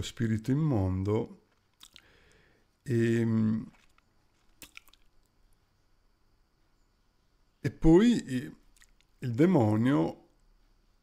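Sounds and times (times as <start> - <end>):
wet mouth clicks: 1.7 - 2.2, 3.7 - 5.2, 8.6 - 9.2.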